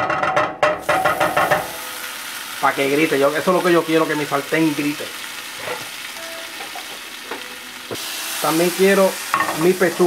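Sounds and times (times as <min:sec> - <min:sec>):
butter sizzling in frying pan: 0:00.8 - 0:10.0
guitar music: 0:03.5 - 0:08.4.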